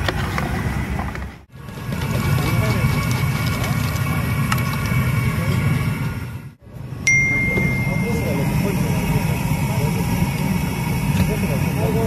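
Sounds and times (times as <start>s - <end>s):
constant low rumble: 0.0s - 12.0s.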